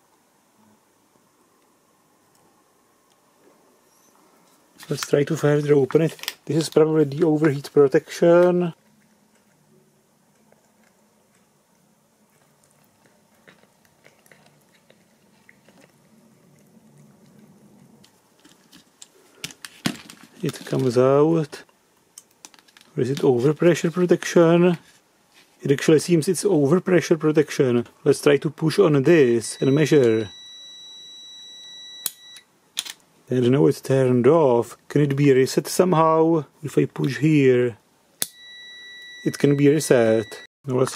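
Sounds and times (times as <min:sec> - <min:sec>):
cat chewing wet food: 0:08.8 - 0:19.3
multimeter continuity beep: 0:29.4 - 0:32.5, 0:38.2 - 0:40.5.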